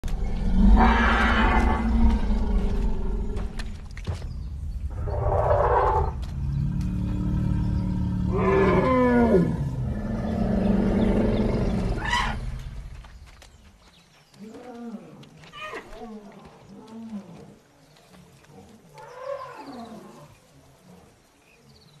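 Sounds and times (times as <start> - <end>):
elephant deep rumble: 0.0 - 13.2.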